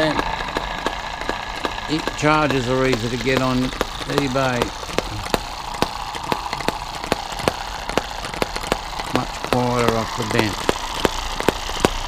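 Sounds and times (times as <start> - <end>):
model engine popping: 0.0 - 12.0
steady mechanical whirr: 0.0 - 12.0.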